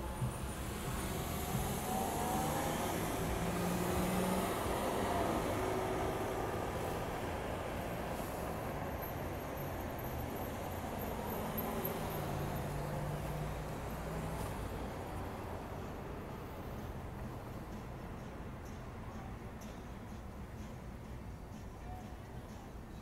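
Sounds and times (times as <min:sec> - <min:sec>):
cars driving past: 0:00.0 - 0:19.0.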